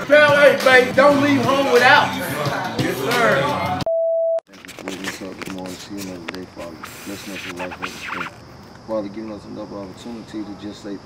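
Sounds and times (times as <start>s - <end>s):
steady test-tone beep: 3.9s - 4.4s
voices: 4.7s - 11.0s.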